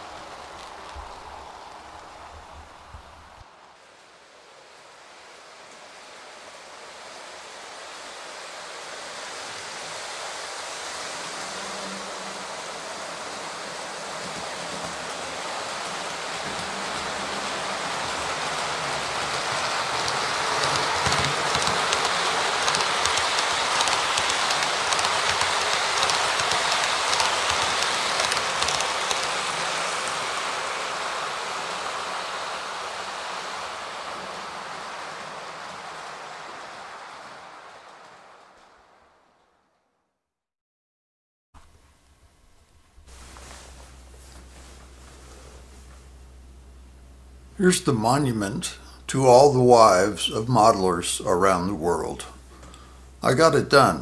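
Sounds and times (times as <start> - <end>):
train rushing past: 0.0 - 39.7, 43.1 - 54.0
wheels clicking on track: 4.6 - 39.2.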